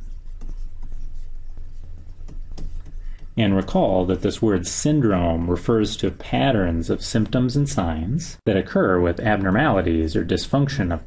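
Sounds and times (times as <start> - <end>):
stylus scratching on tablet: 0.0 - 4.3
low steady hum: 0.0 - 11.0.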